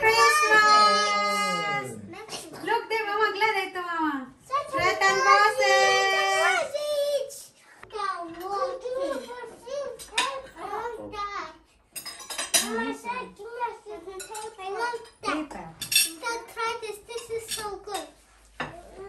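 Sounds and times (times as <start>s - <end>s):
children chattering: 0.0s - 2.5s, 4.6s - 11.2s
cutlery clinking on plates: 8.4s - 10.6s, 11.9s - 13.0s, 14.2s - 16.2s, 17.1s - 18.9s.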